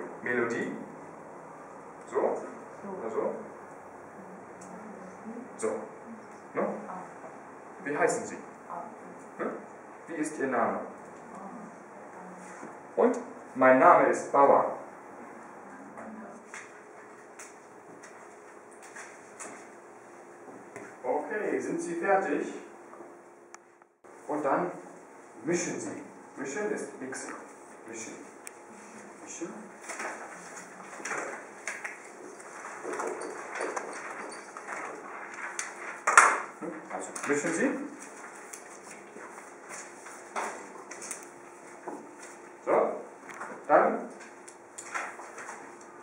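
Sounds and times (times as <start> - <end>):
faint steady hum: 0.0 - 46.0.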